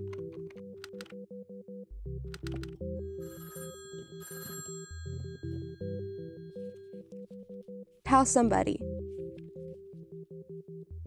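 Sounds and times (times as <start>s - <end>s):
synthesizer music: 0.0s - 3.3s
telephone bell ringing: 3.0s - 7.1s.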